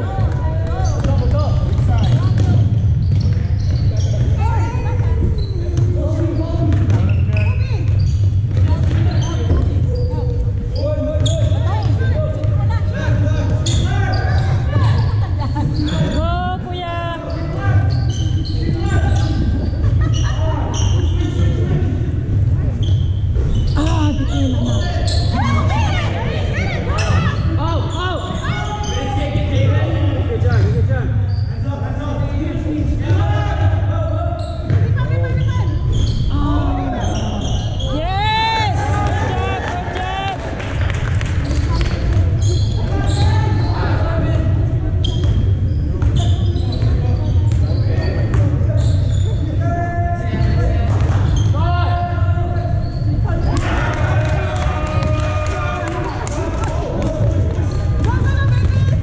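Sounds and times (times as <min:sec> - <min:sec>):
voices of players and spectators: 0:00.0 - 0:59.0
basketballs bouncing on hardwood floor: 0:00.1 - 0:04.5, 0:06.6 - 0:09.9, 0:56.8 - 0:59.0.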